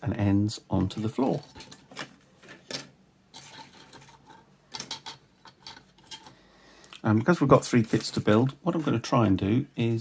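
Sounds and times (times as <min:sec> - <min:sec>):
plastic parts clicking and rattling: 0:00.8 - 0:06.4.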